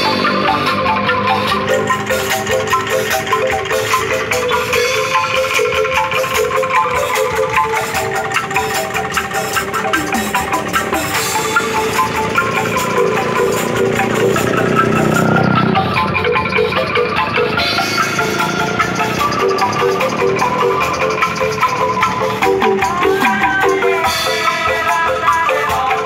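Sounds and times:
drum kit percussion: 0:00.0 - 0:26.0
xylophone melody: 0:00.0 - 0:26.0.

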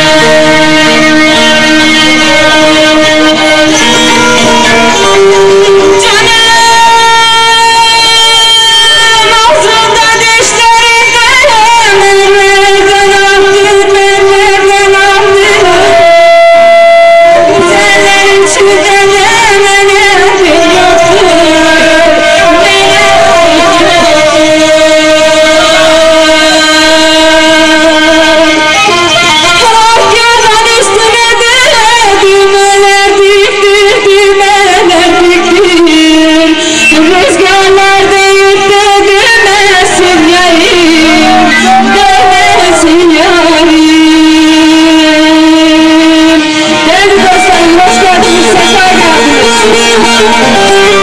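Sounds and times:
woman singing through a microphone: 0:00.0 - 0:51.0.

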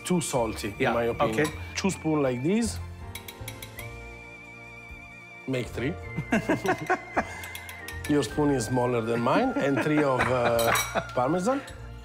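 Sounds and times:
soft background music: 0:00.0 - 0:12.0
spoon clinking ceramic bowl: 0:10.2 - 0:11.8.

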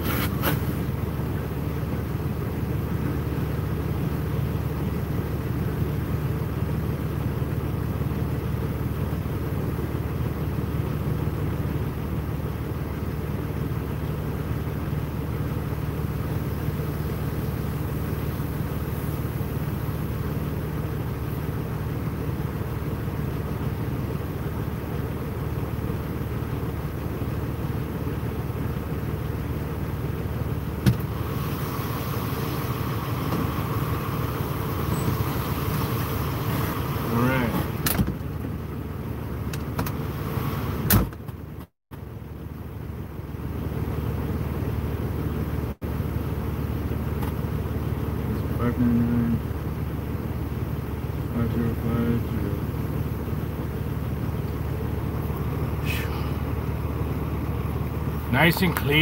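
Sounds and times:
vehicle engine idling: 0:00.0 - 0:59.0.

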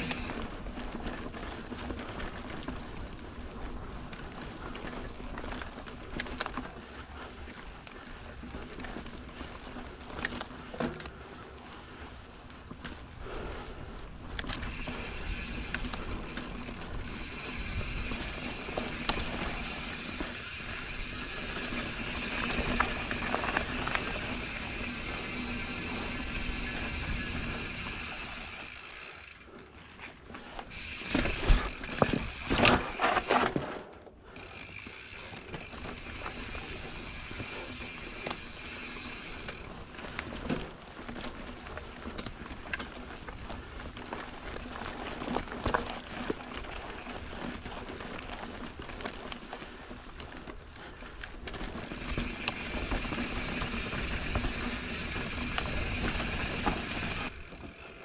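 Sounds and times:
bike freehub buzzing: 0:00.0 - 0:00.7, 0:14.4 - 0:29.5, 0:30.5 - 0:40.7, 0:51.5 - 0:58.0
bike rattling over rocks: 0:00.0 - 0:11.2, 0:14.2 - 0:29.4, 0:30.4 - 0:58.0
tyres rustling on dirt: 0:00.0 - 0:58.0.

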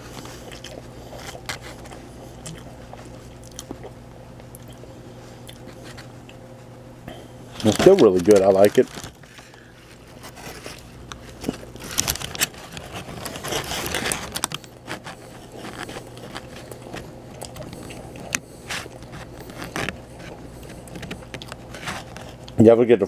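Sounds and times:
chewing: 0:00.0 - 0:06.4, 0:07.2 - 0:22.6
steady low hum: 0:00.0 - 0:23.0
paper wrapper crinkling: 0:07.5 - 0:22.6.

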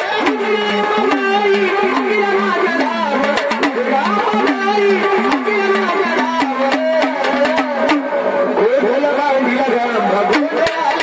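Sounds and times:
drum strokes: 0:00.0 - 0:11.0.

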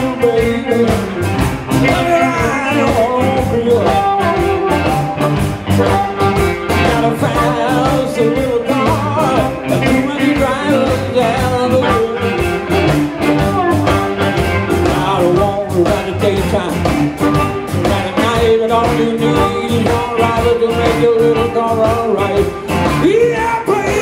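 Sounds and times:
drums keeping a steady beat: 0:00.0 - 0:24.0
electric guitars: 0:00.0 - 0:24.0
amplified harmonica: 0:01.0 - 0:09.7, 0:11.5 - 0:14.8.

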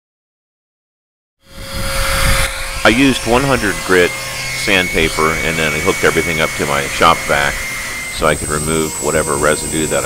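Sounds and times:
power sander whining: 0:01.4 - 0:10.0.

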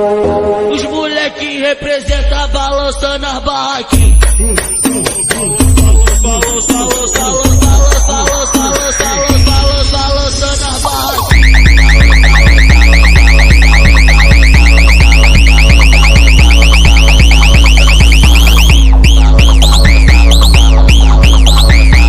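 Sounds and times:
funk beat with heavy bass: 0:02.1 - 0:22.0
high repeating chirp: 0:04.0 - 0:22.0.

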